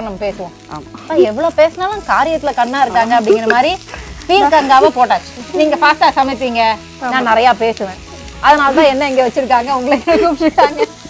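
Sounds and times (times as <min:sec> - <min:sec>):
woman talking: 0:00.0 - 0:10.9
vegetables sizzling in a pan: 0:00.0 - 0:11.0.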